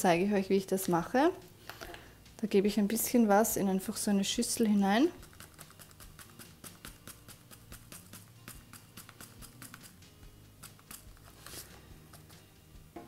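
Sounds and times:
foil pouch rustling: 0:10.8 - 0:12.3.

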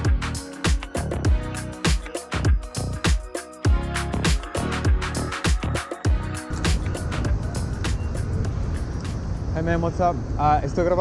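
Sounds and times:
city street traffic rumble: 0:03.9 - 0:11.0.

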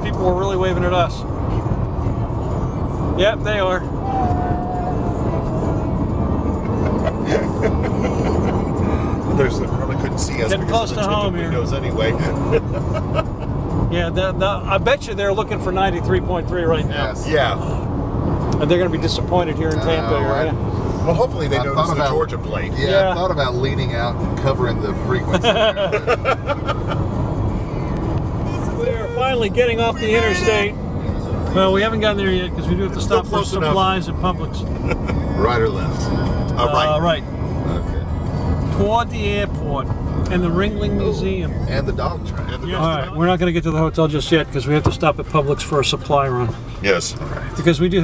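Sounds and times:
car cabin road and engine drone: 0:00.0 - 0:48.0
voices or laughter: 0:06.5 - 0:09.1, 0:12.1 - 0:13.8, 0:25.2 - 0:27.2, 0:34.6 - 0:35.5.

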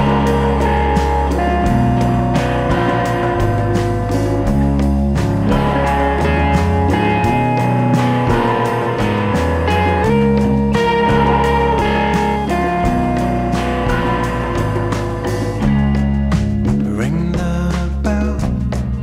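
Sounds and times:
drums with steady beat: 0:00.0 - 0:19.0
electric guitar playing: 0:00.0 - 0:19.0.

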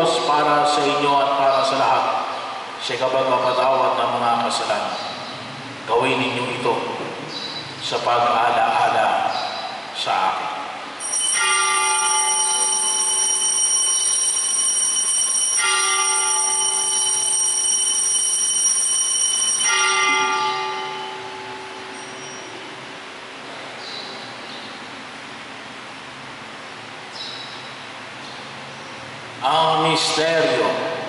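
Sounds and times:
altar bell ringing: 0:11.0 - 0:22.7.

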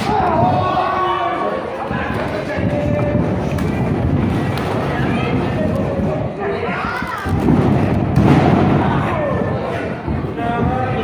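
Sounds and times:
booming thuds of ring floor: 0:07.3 - 0:09.6.

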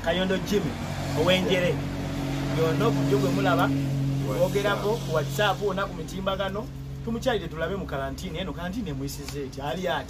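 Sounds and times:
low engine hum: 0:00.0 - 0:10.0
man talking: 0:00.0 - 0:10.0.

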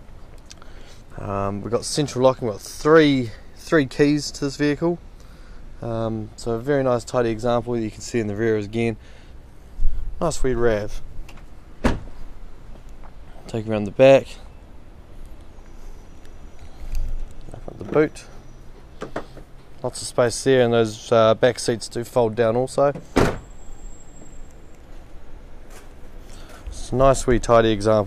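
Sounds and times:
car door thud: 0:11.8 - 0:12.2, 0:23.0 - 0:23.4.

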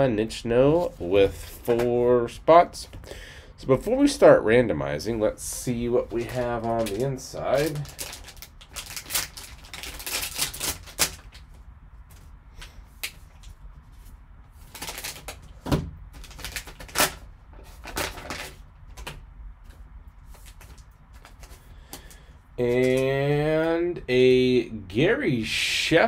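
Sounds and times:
foil wrapper crinkling and tearing: 0:06.1 - 0:11.6, 0:14.6 - 0:15.5, 0:16.1 - 0:19.1.

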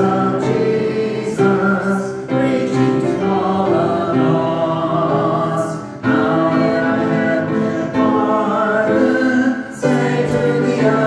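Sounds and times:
people singing a hymn: 0:00.0 - 0:11.0
upright piano: 0:00.0 - 0:11.0.

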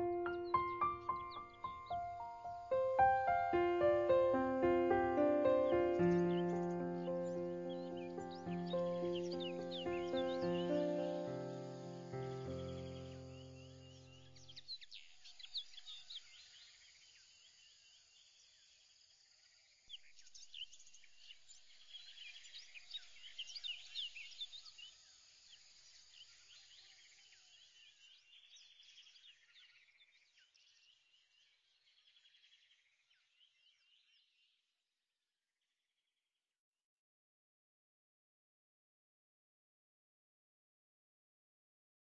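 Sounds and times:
music track: 0:00.0 - 0:13.3
birds chirping: 0:00.0 - 0:16.2.

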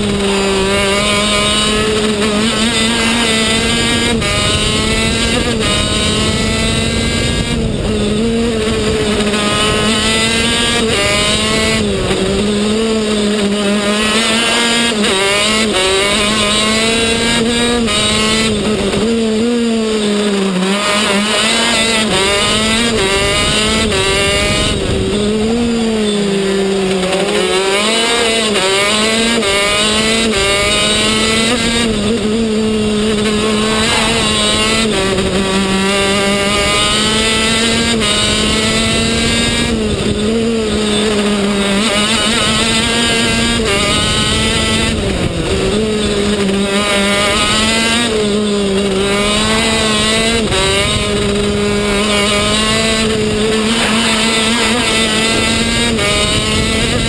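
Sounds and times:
kart engine running hard: 0:00.0 - 0:57.0.

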